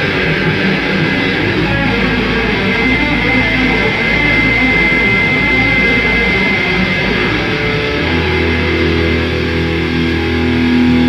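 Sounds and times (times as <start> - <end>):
metal band playing live: 0.0 - 11.0
high steady tone: 0.8 - 9.2.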